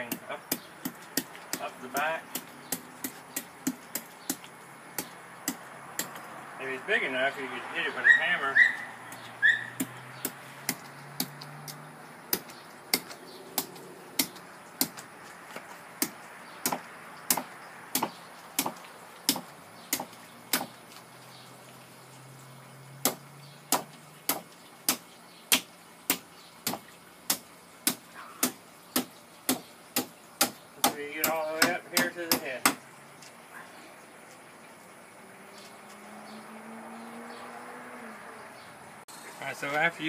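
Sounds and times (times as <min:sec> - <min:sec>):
knife chopping into wooden board: 0:00.0 - 0:06.2, 0:15.6 - 0:20.8, 0:23.0 - 0:32.8.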